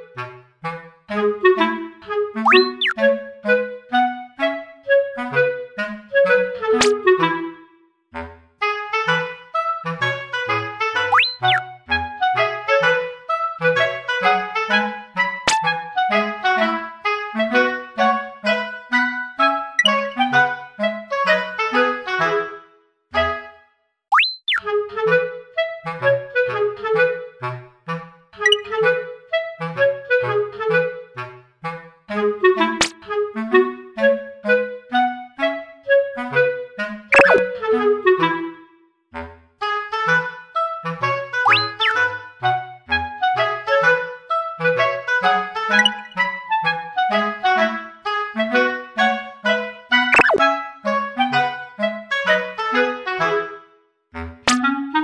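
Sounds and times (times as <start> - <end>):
bouncy clarinet music: 0.0 - 7.7, 8.6 - 22.6, 24.4 - 38.8, 39.6 - 55.0
woodwind melody with bass line: 0.0 - 23.7, 24.6 - 55.0
sliding whistle effect: 2.4 - 3.0, 11.0 - 11.6, 24.1 - 24.6, 28.5 - 28.7, 37.2 - 37.5, 41.5 - 42.1, 45.7 - 46.3, 50.2 - 50.5, 54.5 - 54.8.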